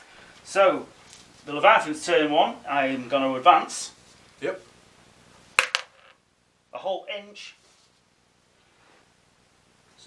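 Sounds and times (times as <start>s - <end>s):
die clattering on plastic: 5.6s - 6.2s.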